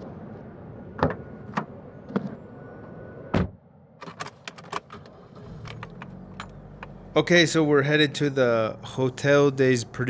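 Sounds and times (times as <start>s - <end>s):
car engine starting and idling: 4.0s - 10.0s.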